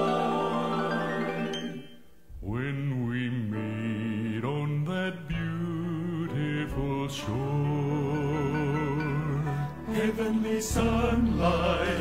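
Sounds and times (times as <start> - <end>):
male vocal quartet singing harmony: 0.0 - 12.0.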